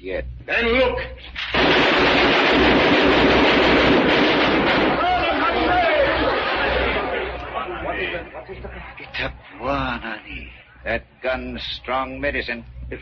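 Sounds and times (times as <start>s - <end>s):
gatling gun rapid firing: 1.4s - 7.0s
men shouting: 4.9s - 8.5s.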